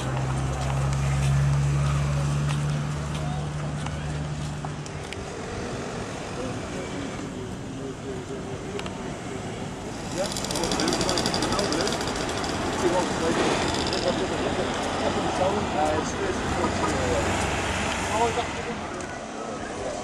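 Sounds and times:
chatter of passers-by: 0.0 - 20.0
road traffic: 0.0 - 20.0.

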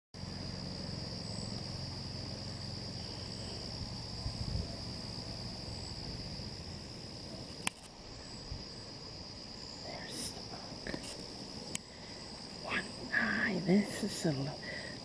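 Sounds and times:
low rumble: 0.2 - 7.5
insects trilling: 0.2 - 15.0.

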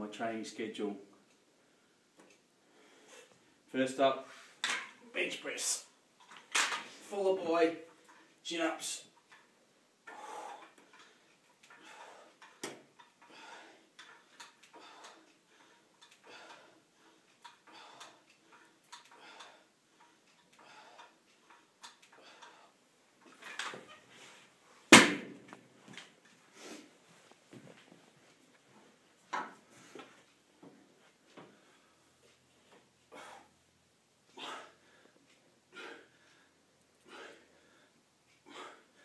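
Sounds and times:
dumbbells clunking down: 9.3 - 24.0
man breathing forcefully: 10.1 - 21.2, 34.3 - 39.0.

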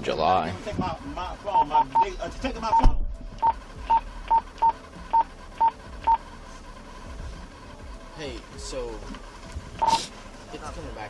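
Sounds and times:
short electronic beeps: 1.6 - 6.2, 9.8 - 10.1.

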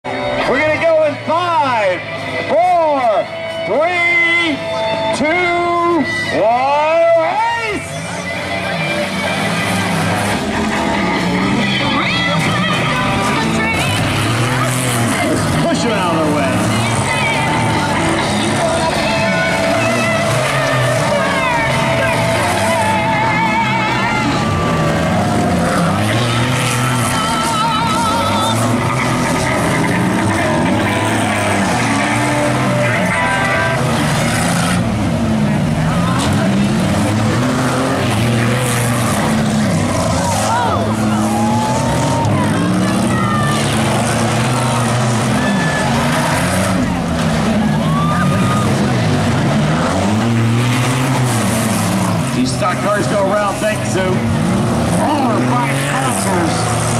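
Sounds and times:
race car engines revving: 0.0 - 56.9.

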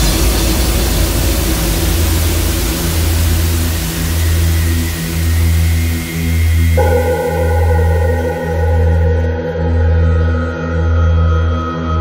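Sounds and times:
white noise wash: 0.0 - 9.9
deep bass synth notes: 3.2 - 11.5.

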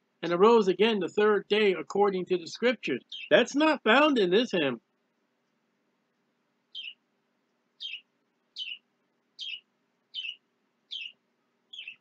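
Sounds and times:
bird high falling chirp: 3.0 - 3.4, 6.7 - 7.0, 7.8 - 8.8, 9.4 - 12.0.

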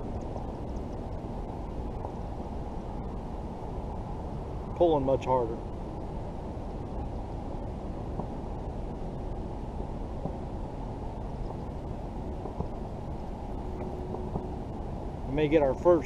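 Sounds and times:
muffled low outdoor rumble: 0.0 - 16.0.

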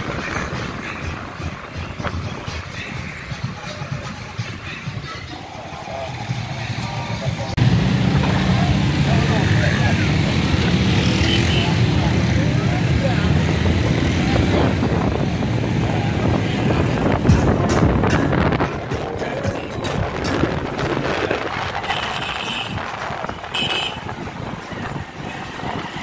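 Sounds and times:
motorcycle engine rumbling: 0.0 - 26.0.

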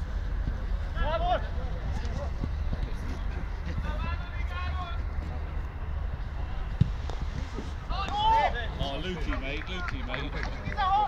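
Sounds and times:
low rumble: 0.0 - 9.9
sharp thud: 6.7 - 8.2
footballers shouting: 7.8 - 11.0.

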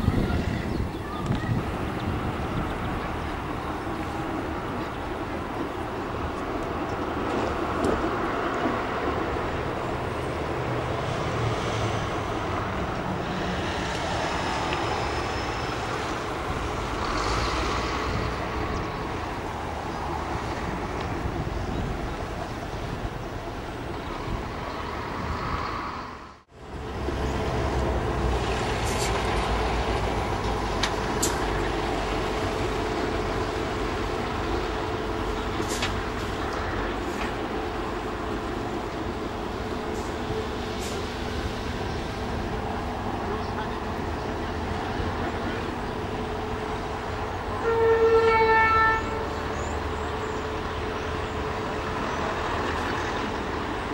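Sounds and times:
diesel locomotive rumble: 0.0 - 53.9
harbour noise: 0.0 - 53.9.

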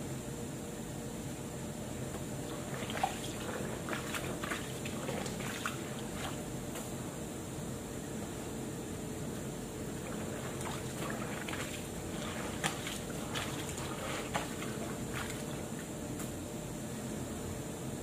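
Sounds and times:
wet clothes wrung out: 2.5 - 6.4, 10.0 - 15.8
water trickling and splashing: 2.5 - 6.5, 10.0 - 15.8.

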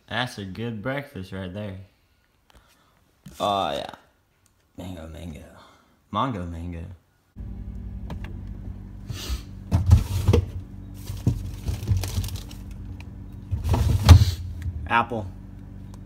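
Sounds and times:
refrigerator low hum: 7.4 - 16.0
items clunking in refrigerator: 9.6 - 14.8.

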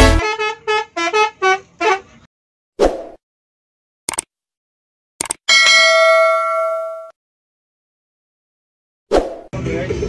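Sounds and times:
multi-tone bus horn tune: 0.0 - 2.3.

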